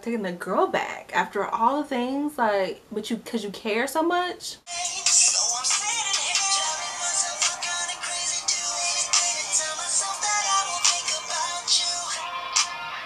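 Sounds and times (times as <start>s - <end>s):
man singing: 4.7s - 13.0s.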